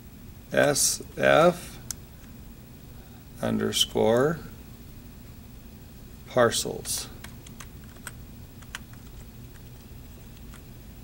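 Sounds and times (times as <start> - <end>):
computer keyboard keystroke clicks: 7.2 - 9.1.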